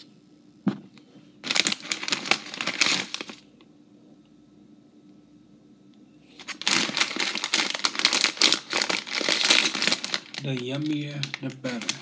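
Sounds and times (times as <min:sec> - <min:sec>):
plastic chip bag crinkling: 0:01.4 - 0:03.5, 0:06.3 - 0:12.0.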